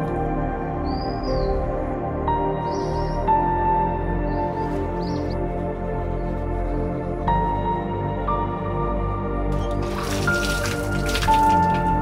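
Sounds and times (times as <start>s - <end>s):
background music with held tones: 0.0s - 12.0s
water splashing and dripping: 9.5s - 12.0s.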